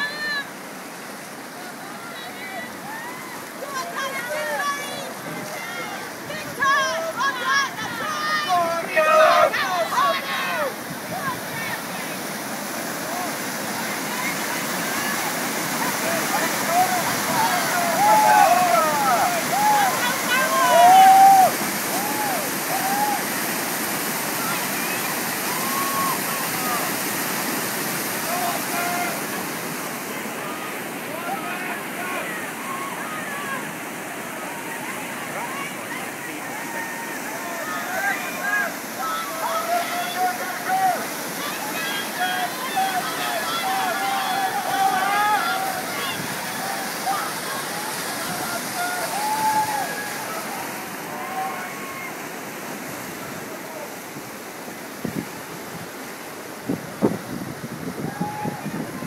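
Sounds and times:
whitewater rushing: 0.0 - 59.0
raised human voices: 1.6 - 12.2, 15.8 - 23.3, 28.2 - 52.2, 58.0 - 59.0.

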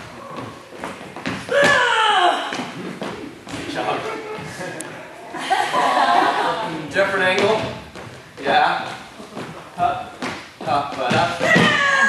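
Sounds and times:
dance steps on wooden floor: 0.0 - 4.6, 7.2 - 12.0.

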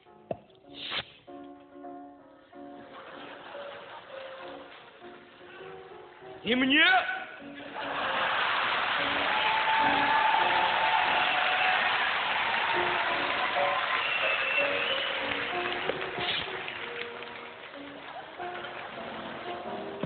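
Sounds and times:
faint background music: 0.0 - 20.0
audience applause: 7.6 - 20.0.

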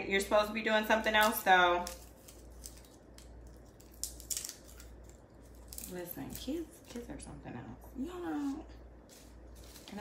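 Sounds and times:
garlic skins crackling: 1.0 - 7.3, 8.3 - 10.0.

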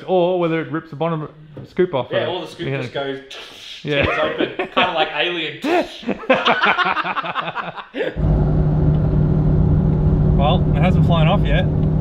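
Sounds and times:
man talking and laughing: 2.7 - 8.2
car engine droning at cruise: 8.2 - 12.0
road rumble: 8.2 - 12.0.

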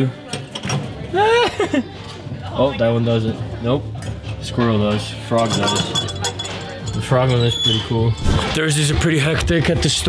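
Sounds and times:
light metal clinks: 5.4 - 7.1.

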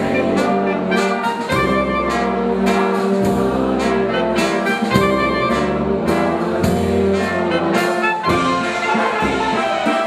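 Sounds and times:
clarinets and trumpets melody: 0.0 - 10.0
tuba bass line: 0.0 - 10.0.

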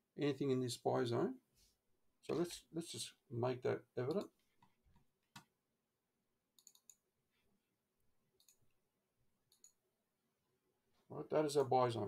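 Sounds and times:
computer mouse clicks: 6.6 - 7.0, 8.4 - 8.6, 9.5 - 9.8.

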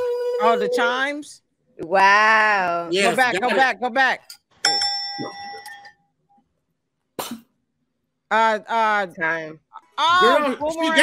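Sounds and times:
bell-like ding: 4.6 - 5.9.

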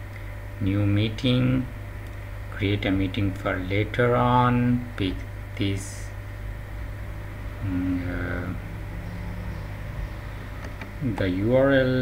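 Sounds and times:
low background hum: 0.0 - 12.0
computer mouse clicks: 10.6 - 11.0.

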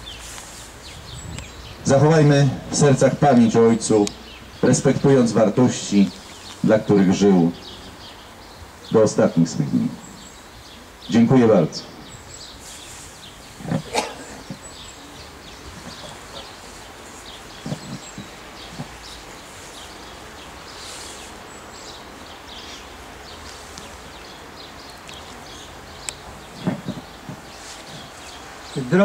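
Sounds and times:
birds chirping: 0.0 - 29.0
outdoor crowd hush: 0.0 - 29.0.

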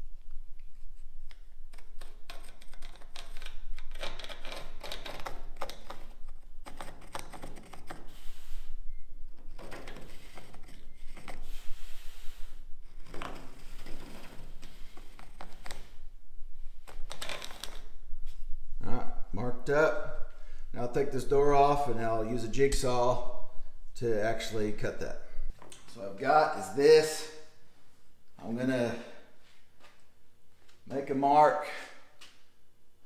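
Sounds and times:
pencil scratching on wood: 6.7 - 8.7, 9.5 - 15.9.

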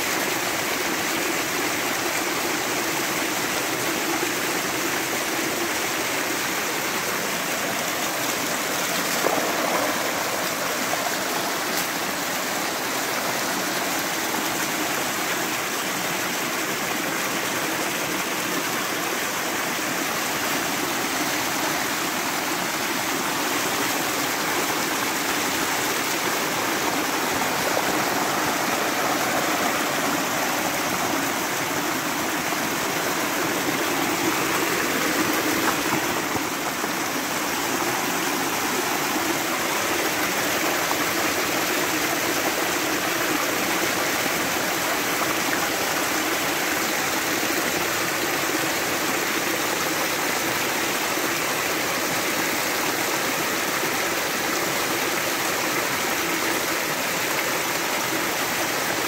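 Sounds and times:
water gushing over stones: 0.0 - 59.0.

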